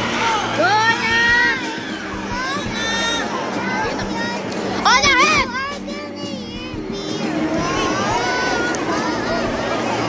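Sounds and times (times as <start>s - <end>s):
crowd chatter: 0.0s - 10.0s
child shouting: 1.3s - 9.5s.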